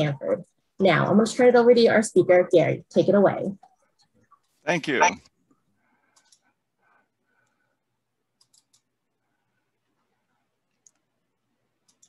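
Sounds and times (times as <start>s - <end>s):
computer mouse clicks: 6.1s - 6.5s, 8.4s - 8.9s, 10.7s - 11.1s, 11.8s - 12.0s.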